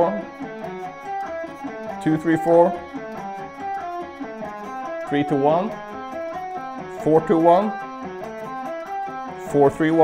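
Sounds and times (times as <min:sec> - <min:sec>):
electric guitar arpeggio: 0:00.0 - 0:10.0.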